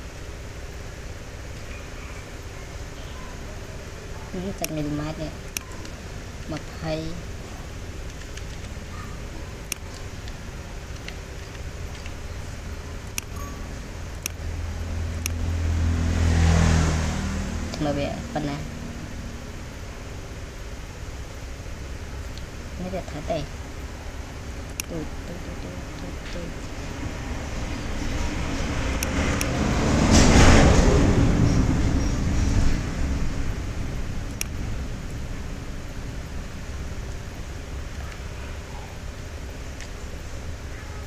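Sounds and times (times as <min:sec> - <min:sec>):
steady low hum: 0:00.0 - 0:41.0
low rumble: 0:05.1 - 0:39.8
sharp clicks: 0:08.0 - 0:08.9, 0:09.6 - 0:12.3, 0:13.0 - 0:14.5, 0:15.1 - 0:15.5, 0:24.7 - 0:25.0, 0:34.3 - 0:34.6
vehicle engine passing by: 0:14.4 - 0:19.7, 0:24.9 - 0:38.8.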